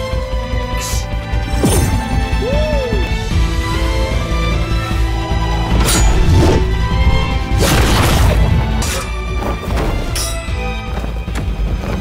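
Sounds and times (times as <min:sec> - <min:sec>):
soundtrack music: 0:00.0 - 0:12.0.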